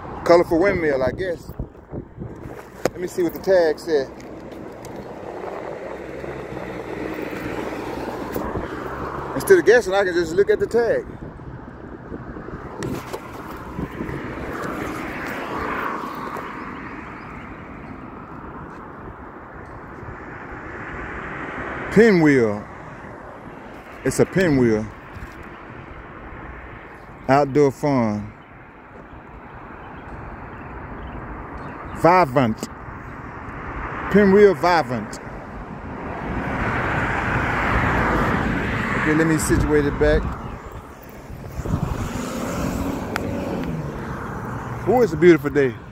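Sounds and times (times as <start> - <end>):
wind rumble on microphone: 0.0 - 22.0, 35.2 - 45.1
road vehicle passing by: 0.0 - 45.9
distant engine passing by: 3.0 - 10.4, 36.1 - 45.9.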